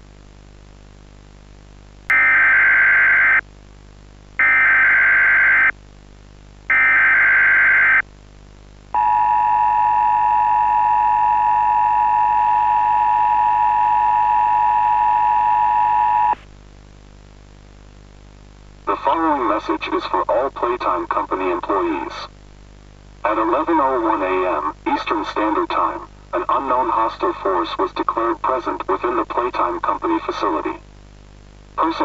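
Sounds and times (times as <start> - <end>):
low steady hum: 0.0 - 32.0.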